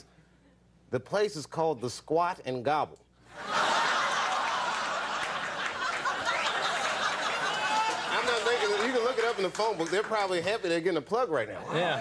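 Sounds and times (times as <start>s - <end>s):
studio audience laughing: 3.3s - 10.4s.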